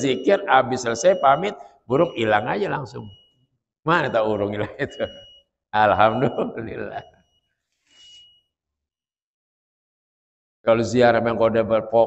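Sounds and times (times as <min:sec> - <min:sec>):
man's voice: 0:00.0 - 0:03.1, 0:03.9 - 0:05.1, 0:05.8 - 0:07.0.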